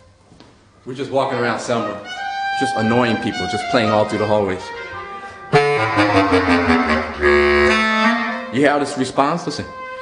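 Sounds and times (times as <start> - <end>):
bass clarinet notes: 1.6 - 10.0.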